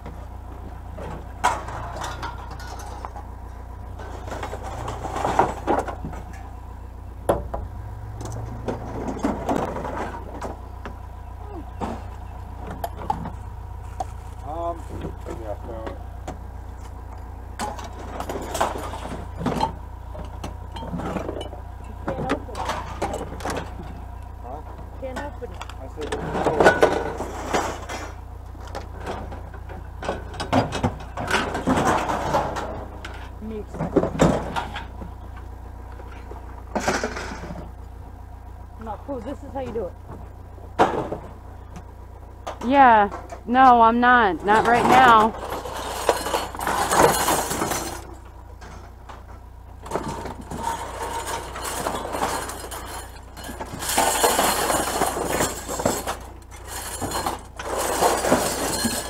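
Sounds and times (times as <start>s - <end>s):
vehicle low rumble: 0.0s - 59.0s
scrap metal clanking: 0.9s - 6.7s, 7.5s - 10.9s, 16.8s - 38.0s, 39.1s - 59.0s
indistinct voices: 8.2s - 19.7s, 20.3s - 28.2s, 42.5s - 48.0s.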